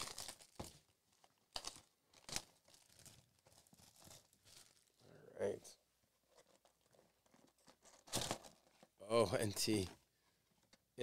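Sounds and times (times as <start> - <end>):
plastic wrap crinkling and tearing: 0.0 - 5.0, 6.3 - 9.0.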